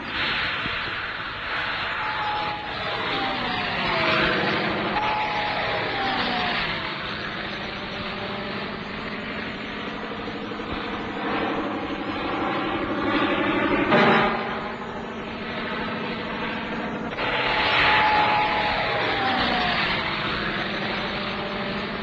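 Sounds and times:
aircraft engine drone: 0.0s - 22.0s.

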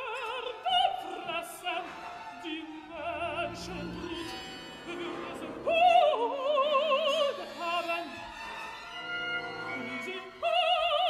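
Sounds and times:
woman singing operatic aria: 0.0s - 8.4s, 9.7s - 11.0s
orchestra playing: 0.0s - 11.0s.

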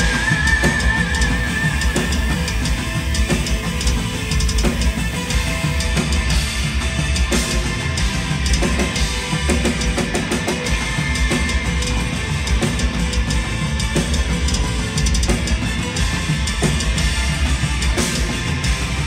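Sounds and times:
distorted electric guitars: 0.0s - 19.0s
driving bass drum: 0.0s - 19.0s
heavy metal band playing live: 0.0s - 19.0s.

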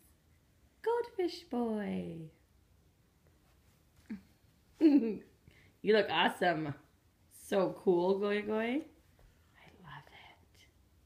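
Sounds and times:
faint whispered voice: 9.5s - 10.8s.

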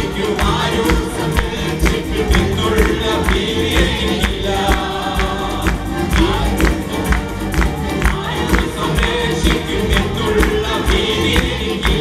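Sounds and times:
acoustic guitar: 0.0s - 12.0s
keyboard: 0.0s - 12.0s
steady percussive beat: 0.0s - 12.0s
voices singing together: 0.0s - 12.0s.

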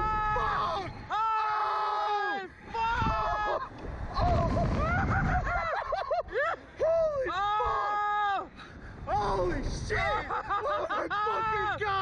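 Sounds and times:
men screaming: 0.0s - 5.4s, 10.0s - 12.0s.

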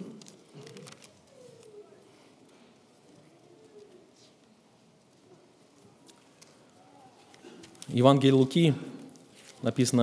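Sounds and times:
faint rustle of pages: 0.0s - 8.4s, 9.0s - 10.0s.

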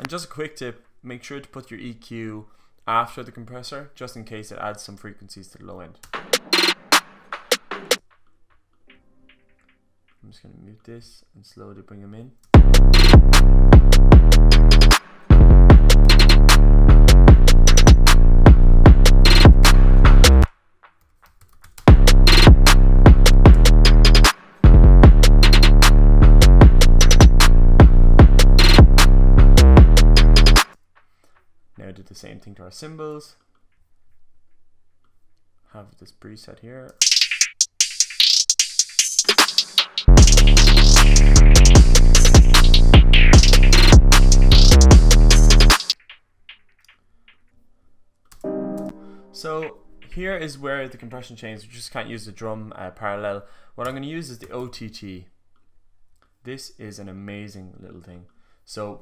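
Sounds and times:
electronic hip-hop beat: 6.1s - 8.0s, 12.6s - 20.5s, 21.8s - 30.7s, 37.0s - 47.5s, 48.5s - 50.5s
held synthesizer note: 48.5s - 50.2s.

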